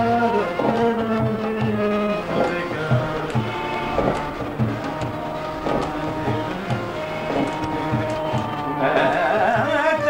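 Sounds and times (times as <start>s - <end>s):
hand drum beat: 0.0s - 10.0s
harmonium chords: 0.0s - 10.0s.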